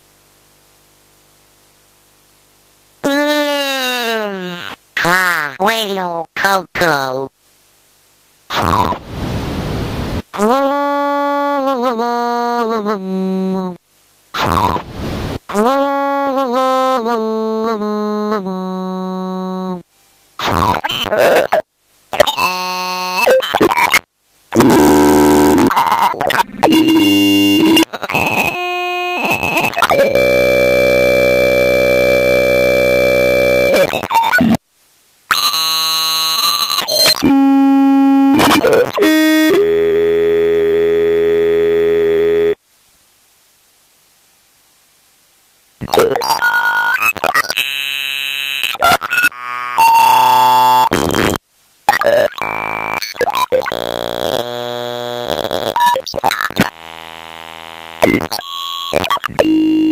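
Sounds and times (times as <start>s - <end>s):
harsh buzzing electronic noise: 8.5s - 11.4s, 14.3s - 15.6s, 20.4s - 34.6s, 35.3s - 42.6s, 45.8s - 59.9s
steady pitched electronic tone: 24.6s - 27.9s, 29.5s - 33.9s.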